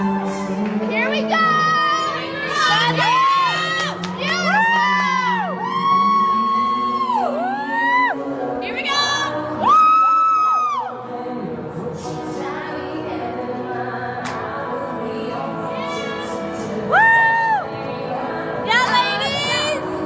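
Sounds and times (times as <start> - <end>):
spectators whooping and cheering: 0.0 - 0.6, 2.6 - 8.2, 9.6 - 11.0, 16.9 - 17.8.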